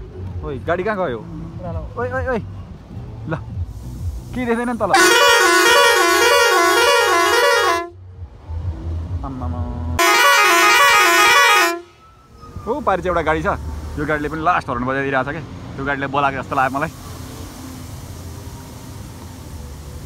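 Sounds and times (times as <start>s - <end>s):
low engine rumble: 0.0s - 20.0s
warbling musical vehicle horn: 4.9s - 8.0s, 10.0s - 12.4s.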